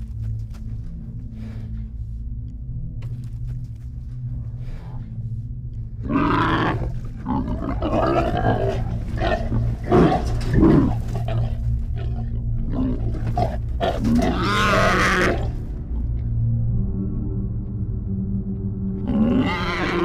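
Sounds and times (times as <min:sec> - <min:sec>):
low steady drone: 0:00.0 - 0:20.0
creature growling: 0:06.0 - 0:15.6, 0:19.0 - 0:20.0.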